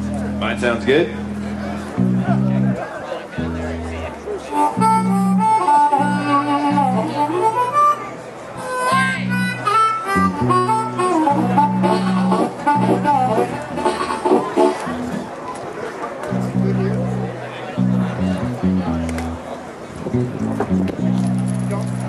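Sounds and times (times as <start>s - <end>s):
sustained low bass notes: 0.0s - 7.8s, 8.6s - 15.4s, 16.3s - 22.0s
bluesy harmonica: 4.4s - 15.2s.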